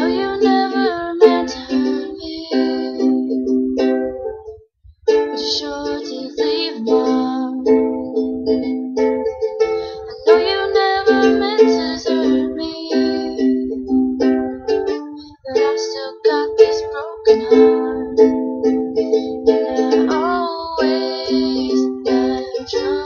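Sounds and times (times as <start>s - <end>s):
woman singing: 0.0s - 3.4s, 5.2s - 8.6s, 9.9s - 13.8s, 15.0s - 18.4s, 19.4s - 23.0s
ukulele strumming chords: 0.0s - 23.0s.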